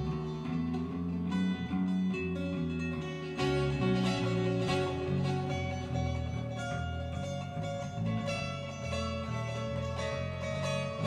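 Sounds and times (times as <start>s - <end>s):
acoustic guitar plucking: 0.0s - 11.0s
electric bass: 0.0s - 11.0s.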